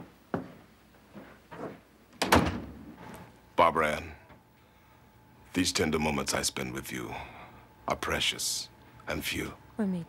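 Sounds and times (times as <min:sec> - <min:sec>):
door shutting with a bang: 0:02.2 - 0:02.8
wooden door opening: 0:02.2 - 0:02.8.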